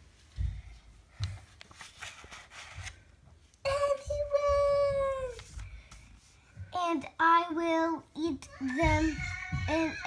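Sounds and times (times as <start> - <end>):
book page turning: 1.2 - 3.2.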